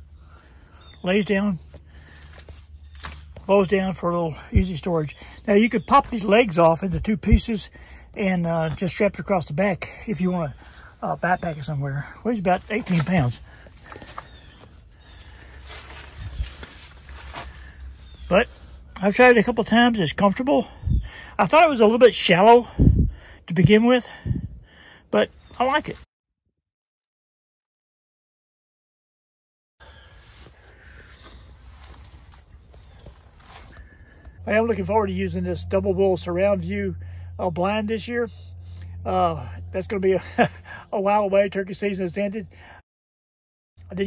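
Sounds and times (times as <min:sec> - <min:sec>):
steady low rumble: 0:01.6 - 0:21.5, 0:30.8 - 0:40.8.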